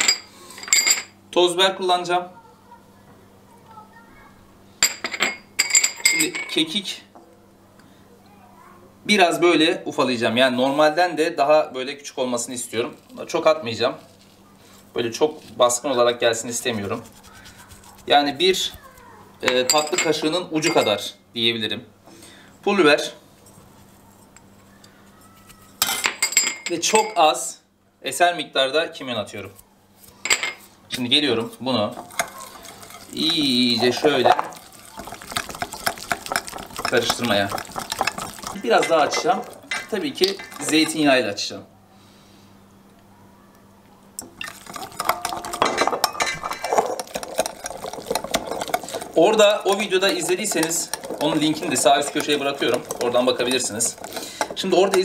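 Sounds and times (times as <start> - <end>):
whisk beating in glass bowl: 16.1 - 18.7, 32.0 - 41.2, 44.4 - 55.0.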